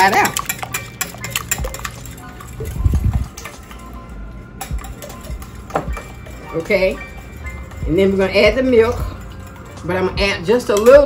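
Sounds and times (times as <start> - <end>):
whisk clicking against glass bowl: 0.0 - 3.5
faint background music: 0.0 - 11.0.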